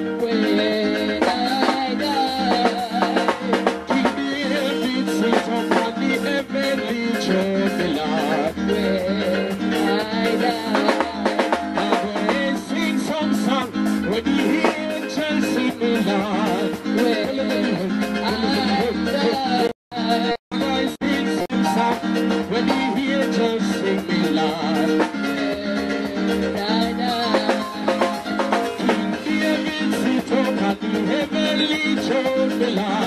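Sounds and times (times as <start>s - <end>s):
bass guitar: 0.0s - 33.0s
drum kit: 0.0s - 33.0s
man singing into a microphone: 0.0s - 33.0s.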